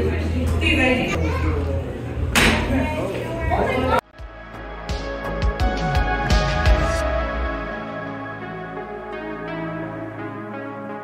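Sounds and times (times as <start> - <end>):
children talking: 0.0 - 4.0.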